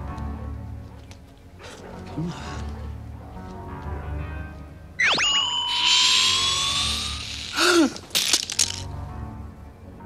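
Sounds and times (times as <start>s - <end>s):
electronic zap: 5.0s - 7.6s
high electronic tone: 5.0s - 7.6s.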